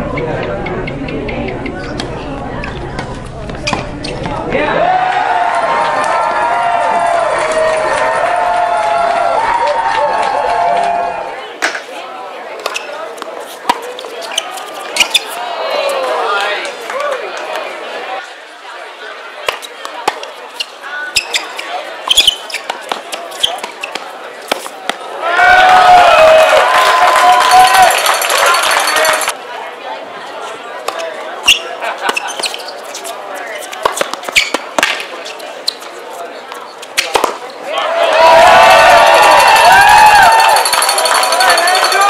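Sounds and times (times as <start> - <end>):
voices of players and spectators: 0.0 - 42.0
racket striking ball: 22.2 - 25.1, 33.8 - 35.1, 37.0 - 37.4
tennis ball hits: 22.7 - 25.1, 33.8 - 35.1, 37.0 - 37.4.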